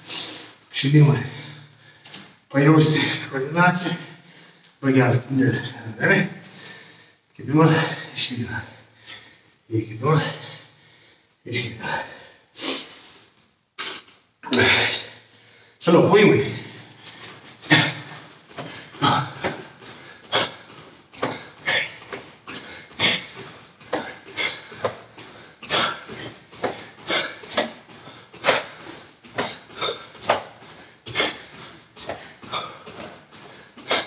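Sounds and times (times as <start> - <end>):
bare feet thudding on foam mats: 17.0 - 34.0.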